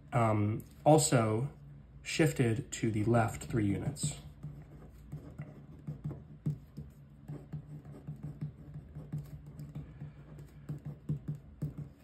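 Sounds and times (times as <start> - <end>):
marker pen writing on paper: 3.4 - 12.0.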